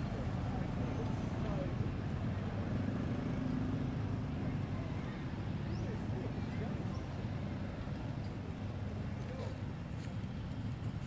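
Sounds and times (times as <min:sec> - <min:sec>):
minibus engine rumble: 0:00.0 - 0:11.0.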